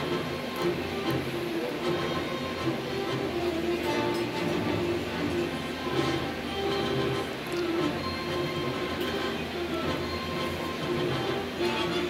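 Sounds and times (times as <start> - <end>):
orchestral music from television: 0.0 - 12.0.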